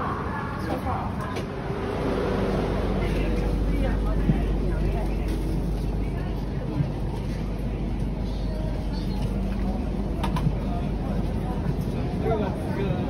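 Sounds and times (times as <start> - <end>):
passenger chatter: 0.0 - 13.0
train interior rumble: 0.0 - 13.0.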